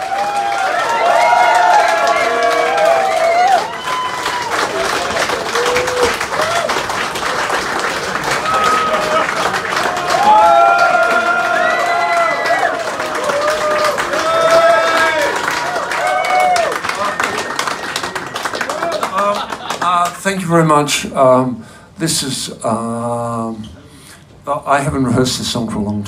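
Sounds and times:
crowd shouting and calling: 0:00.0 - 0:07.0, 0:08.2 - 0:19.4
audience clapping: 0:00.0 - 0:20.6.

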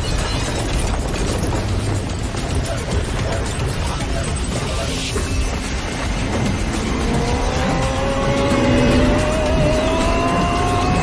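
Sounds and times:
music: 0:00.0 - 0:11.0
dense rumble: 0:00.1 - 0:11.0.

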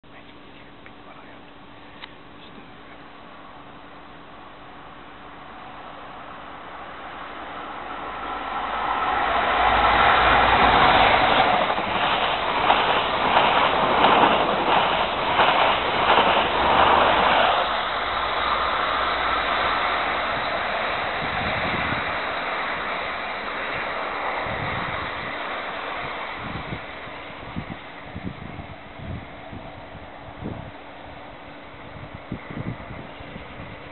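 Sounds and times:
train passing at speed: 0:01.2 - 0:33.9
wheels clattering over rails: 0:09.7 - 0:26.8.

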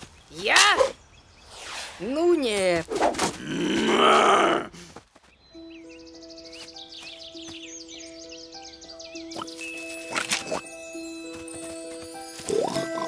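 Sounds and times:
gentle background music: 0:05.3 - 0:13.0.

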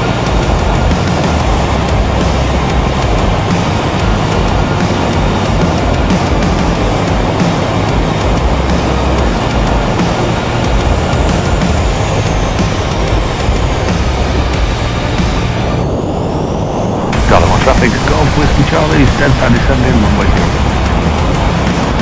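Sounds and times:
aircraft engine running: 0:00.0 - 0:22.0
music: 0:00.0 - 0:22.0
wind rush on microphone: 0:00.0 - 0:22.0.

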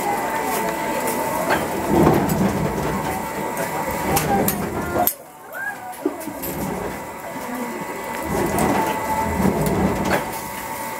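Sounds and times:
low mechanical rumble: 0:01.0 - 0:10.9.

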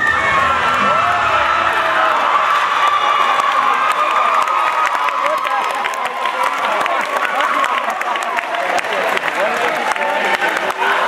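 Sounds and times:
crowd cheering and screaming: 0:00.0 - 0:11.0.

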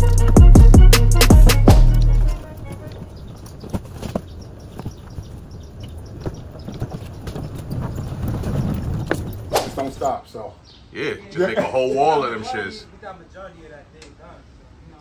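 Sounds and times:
background music: 0:00.0 - 0:03.1
hand truck wheels rumbling on sidewalk: 0:02.0 - 0:10.2.

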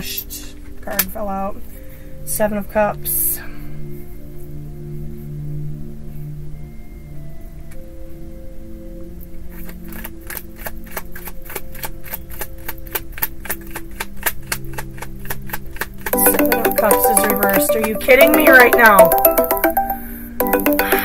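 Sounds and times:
soft background music: 0:00.0 - 0:15.4, 0:16.2 - 0:21.0
phone ringtone melody: 0:16.2 - 0:21.0.

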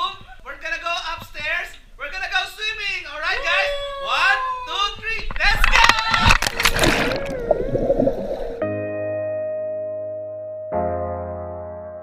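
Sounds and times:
muffled underwater bubbles churning: 0:05.6 - 0:08.6.

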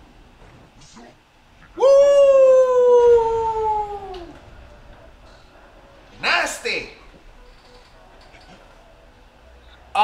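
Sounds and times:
man whooping: 0:01.7 - 0:04.4.

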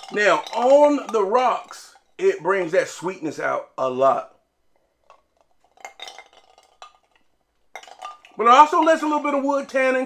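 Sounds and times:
ice cubes clinking in glass: 0:00.0 - 0:02.1, 0:05.2 - 0:09.2.

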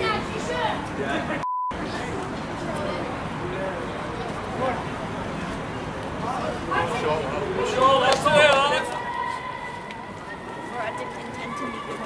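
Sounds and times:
faint chatter: 0:00.0 - 0:12.0.

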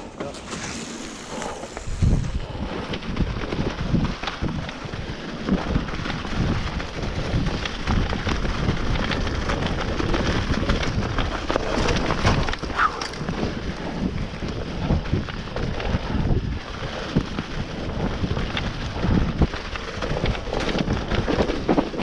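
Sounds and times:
bike tyres rolling on dirt: 0:00.0 - 0:22.0
wind buffeting microphone: 0:00.0 - 0:22.0
bike knocks and clatters: 0:02.9 - 0:22.0.

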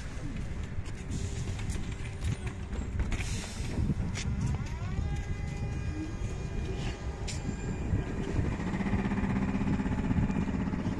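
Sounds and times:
street rumble: 0:00.0 - 0:10.9
trolleybus electric motor whine: 0:00.0 - 0:10.9.

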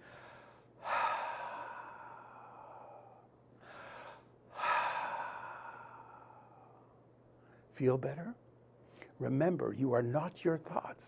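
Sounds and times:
man breathing deeply: 0:00.0 - 0:07.7.

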